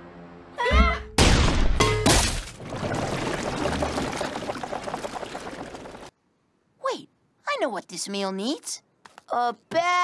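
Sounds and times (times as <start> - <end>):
cartoon crash hit: 1.1 - 2.5.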